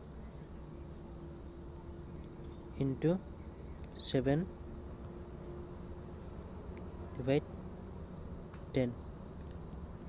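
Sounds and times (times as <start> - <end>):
low background hum: 0.0 - 10.0.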